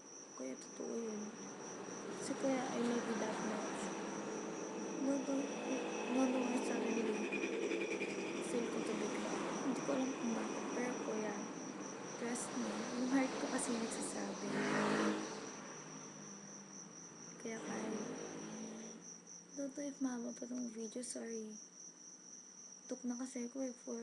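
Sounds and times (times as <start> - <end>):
cricket trilling: 0.0 - 24.0
girl speaking: 0.4 - 1.3, 2.2 - 3.9, 5.0 - 7.2, 8.4 - 11.5, 12.2 - 14.5, 17.4 - 18.1, 19.6 - 21.6, 22.9 - 24.0.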